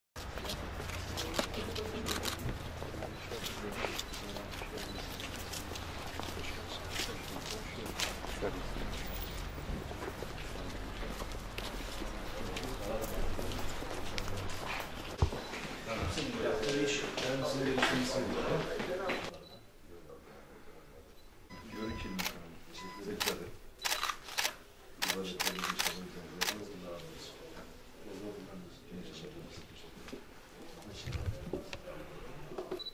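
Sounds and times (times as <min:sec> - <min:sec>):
murmur of voices: 0:00.8 - 0:15.2
faint voices: 0:00.8 - 0:30.0
camera shutters clicking: 0:01.3 - 0:02.4, 0:23.2 - 0:26.6.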